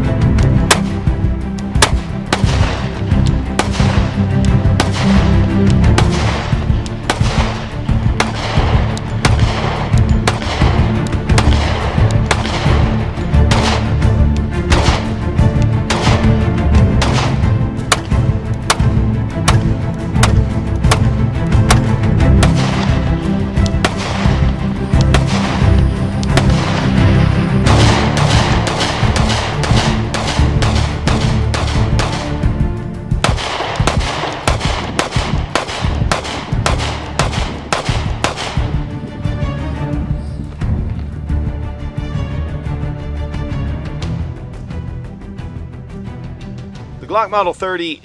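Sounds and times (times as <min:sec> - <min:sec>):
background music with steady beat: 0:00.0 - 0:48.0
pistol shots: 0:00.6 - 0:01.1, 0:01.7 - 0:15.2, 0:15.9 - 0:27.0, 0:27.6 - 0:32.5, 0:33.2 - 0:38.8.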